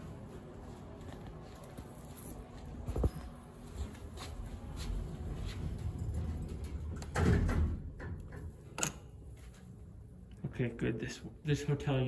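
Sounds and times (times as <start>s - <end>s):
footsteps on carpet: 0.0s - 6.4s.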